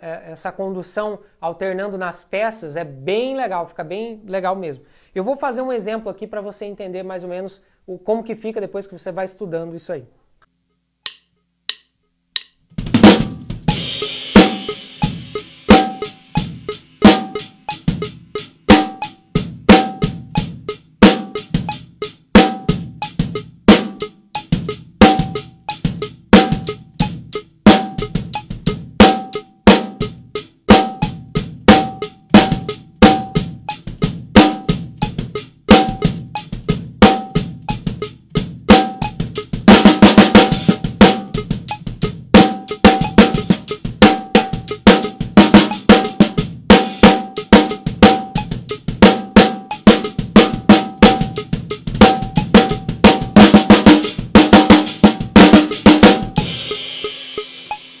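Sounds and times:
drum kit groove: 11.0 - 58.0
cymbal ringing: 56.4 - 58.0.

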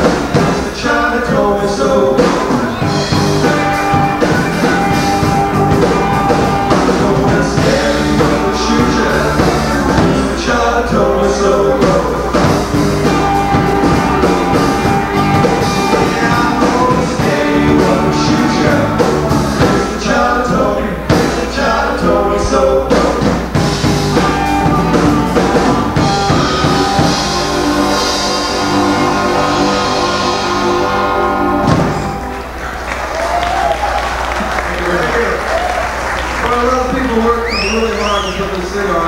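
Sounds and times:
drum kit: 0.0 - 34.6
electric guitar: 0.0 - 36.4
bass guitar: 0.0 - 39.0.

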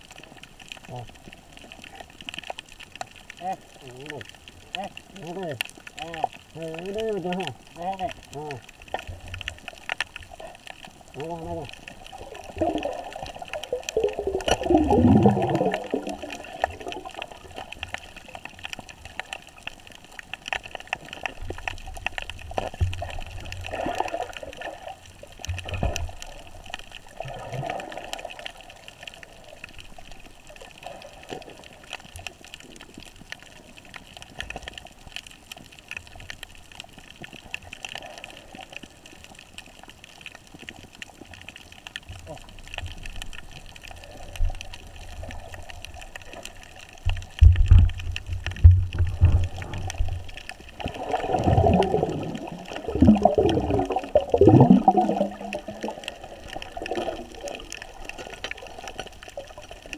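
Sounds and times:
faint crackle of clicks: 0.0 - 59.9
water gurgling underwater: 0.0 - 59.9.

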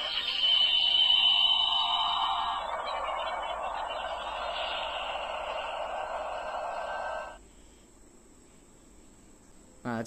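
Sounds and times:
toy speaker steady hiss: 0.0 - 7.9.

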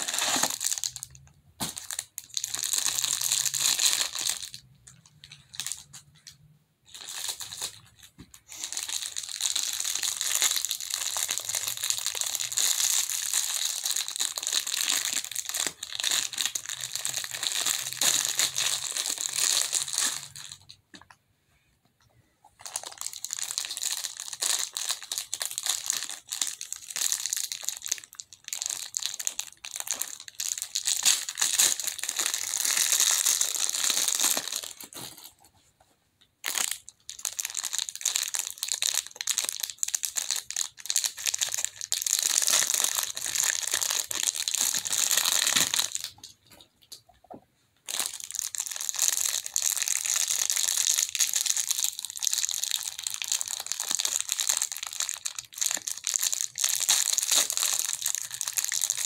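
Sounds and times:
plastic wrapping crinkling: 0.0 - 20.8, 22.6 - 35.5, 36.4 - 46.6, 47.8 - 59.0.

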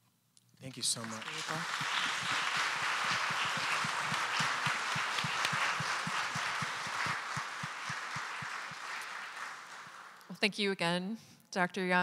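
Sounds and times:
audience applauding: 0.7 - 10.4.

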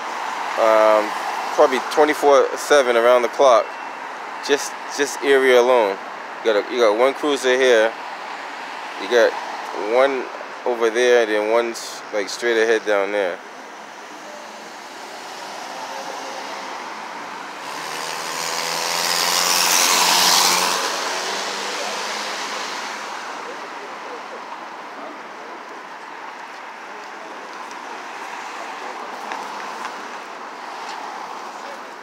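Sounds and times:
city traffic noise: 0.0 - 32.0
car passing by: 14.0 - 24.4, 27.4 - 32.0.

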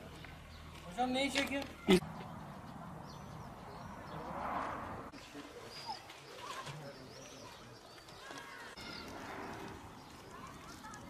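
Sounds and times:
small birds chirping: 0.0 - 4.4, 5.2 - 11.0.

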